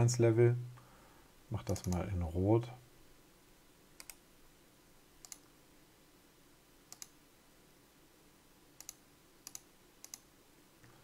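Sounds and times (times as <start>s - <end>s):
computer mouse clicking: 1.6s - 2.1s, 4.0s - 4.2s, 5.2s - 5.5s, 6.9s - 7.2s, 8.8s - 10.3s.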